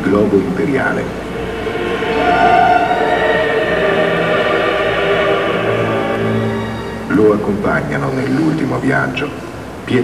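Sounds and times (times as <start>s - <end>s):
choir holding sustained notes: 0.8s - 8.0s.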